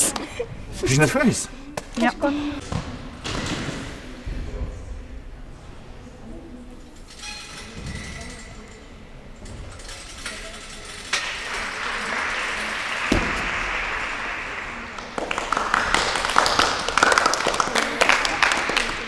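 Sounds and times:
people clapping: 11.1s - 19.0s.

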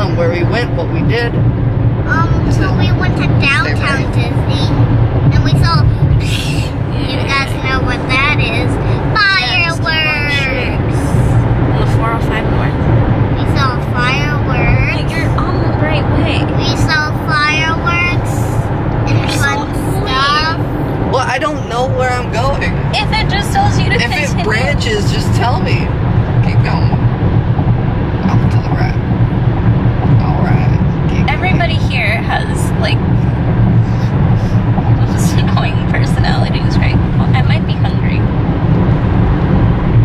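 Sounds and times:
car cabin road rumble: 0.0s - 40.0s
young child talking: 2.1s - 11.2s, 13.4s - 20.8s, 22.9s - 24.8s.

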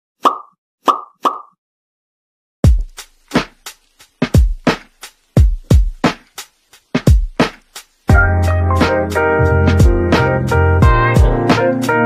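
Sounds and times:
cartoon pop sound effects: 0.2s - 1.6s.

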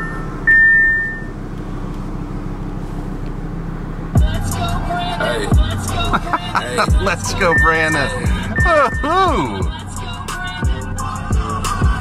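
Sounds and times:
dashboard warning chime: 0.0s - 1.4s, 6.2s - 9.7s
car engine running inside cabin: 0.0s - 12.0s.

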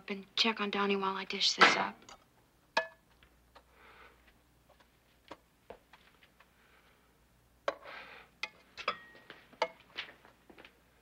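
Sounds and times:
dishes and utensils clinking: 8.4s - 9.8s.

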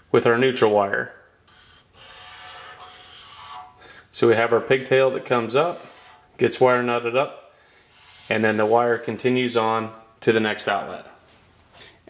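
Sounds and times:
marker squeaking on whiteboard: 1.4s - 3.8s, 5.4s - 6.3s, 7.9s - 9.3s.

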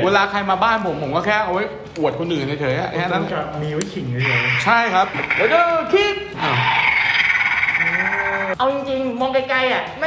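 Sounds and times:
toy fan motor whirring: 4.2s - 8.6s.

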